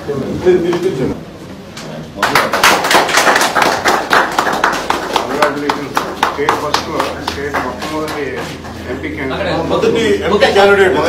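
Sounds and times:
people clapping: 0:02.2 - 0:09.1.

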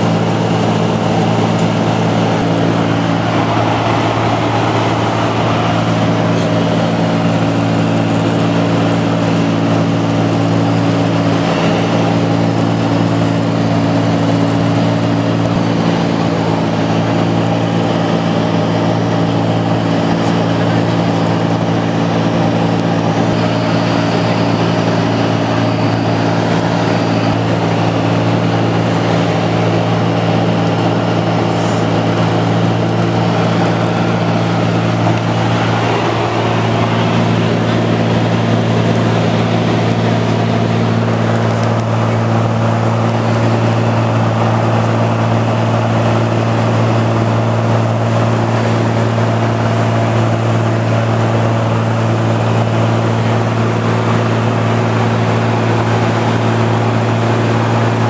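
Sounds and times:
light aircraft engine drone: 0:00.0 - 0:58.0.

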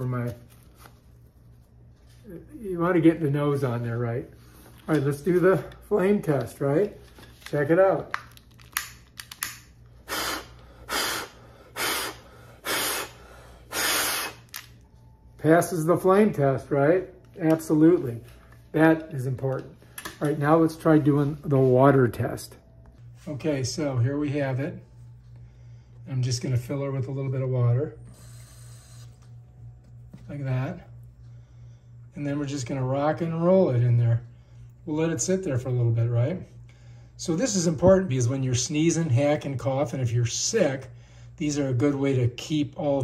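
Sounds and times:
steady low hum: 0:00.0 - 0:43.0
breaths blown through face mask: 0:10.0 - 0:14.5.

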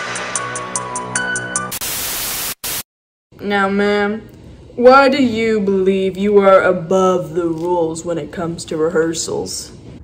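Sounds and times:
tv static hiss: 0:01.7 - 0:02.9.

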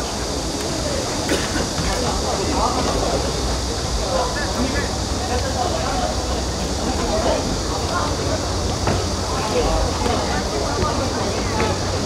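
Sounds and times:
steady rumbling noise: 0:00.0 - 0:12.0.

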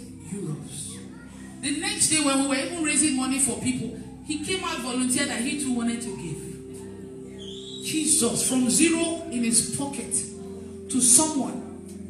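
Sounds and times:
woman speaking over loudspeakers: 0:00.0 - 0:11.8.

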